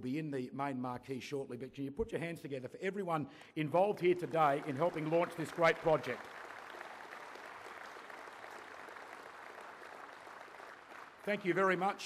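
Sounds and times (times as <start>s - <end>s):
audience applauding: 4.0s - 12.0s.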